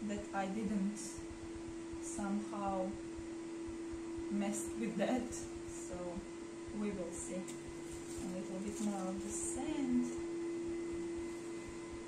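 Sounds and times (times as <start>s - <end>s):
vacuum cleaner hum: 1.8s - 12.0s.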